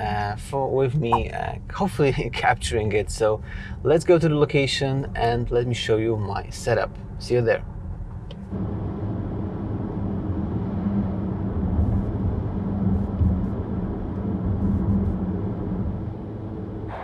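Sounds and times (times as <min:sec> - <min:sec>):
car engine drone: 0:05.5 - 0:17.0
tyre and road noise: 0:06.8 - 0:17.0.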